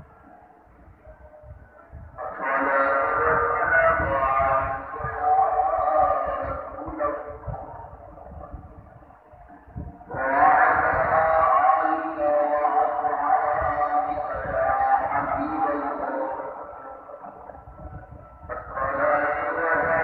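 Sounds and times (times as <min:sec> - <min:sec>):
call to prayer sung: 0:00.0 - 0:20.0.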